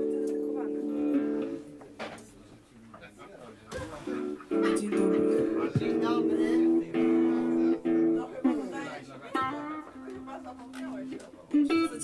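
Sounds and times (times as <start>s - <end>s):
guitar strum: 4.1s - 8.7s, 9.3s - 12.0s
guitar chord ringing: 9.3s - 12.0s.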